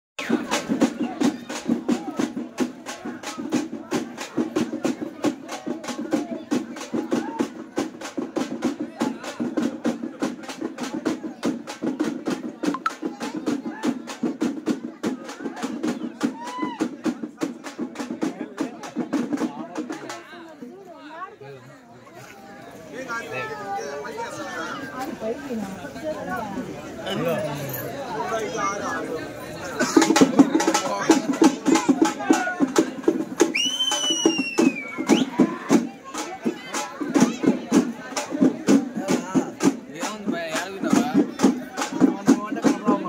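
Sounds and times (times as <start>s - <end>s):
drums beating fast: 0.2s - 20.7s, 29.7s - 43.0s
crowd voices: 0.2s - 43.0s.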